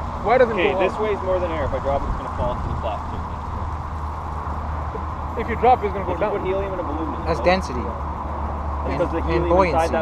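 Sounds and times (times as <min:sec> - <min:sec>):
low outdoor background rumble: 0:00.0 - 0:10.0.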